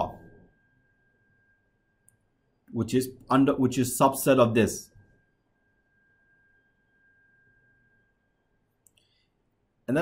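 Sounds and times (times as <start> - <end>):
faint steady high tone: 0.0 - 10.0.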